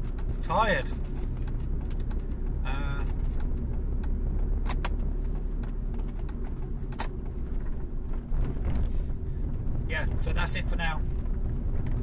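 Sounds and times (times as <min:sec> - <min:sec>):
vehicle interior rumble: 0:00.0 - 0:12.0.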